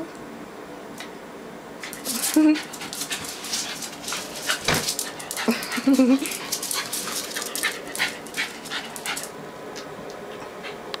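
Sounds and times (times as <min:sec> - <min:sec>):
dog panting: 0:01.8 - 0:09.4.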